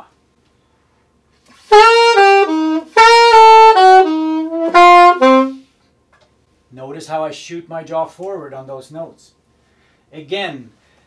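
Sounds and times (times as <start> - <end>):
alto saxophone jazz line: 1.4 - 5.8.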